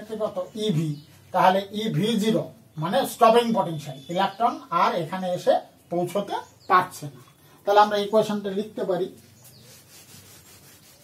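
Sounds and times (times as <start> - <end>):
chalk on a blackboard: 9.2 - 11.0.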